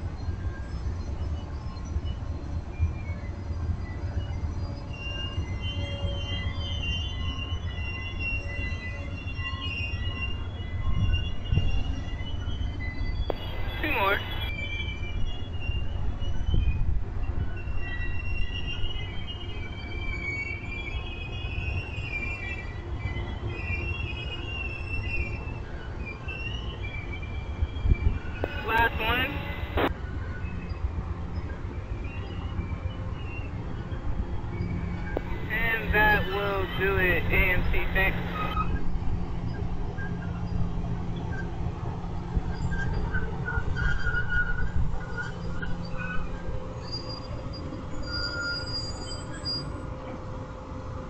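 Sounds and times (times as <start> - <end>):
high-pitched wheel squeal: 42.5 - 49.9.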